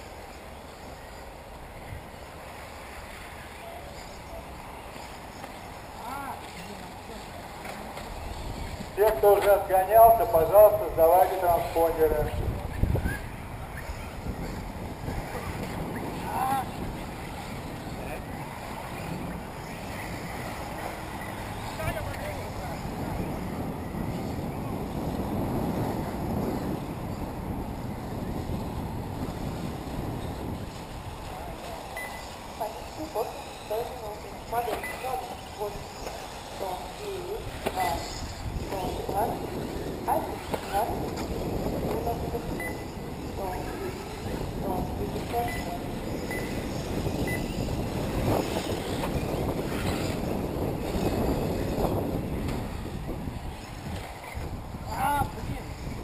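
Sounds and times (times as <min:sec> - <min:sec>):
indistinct voices chattering: 0:00.0 - 0:56.0
wind rumbling on microphone: 0:00.0 - 0:56.0.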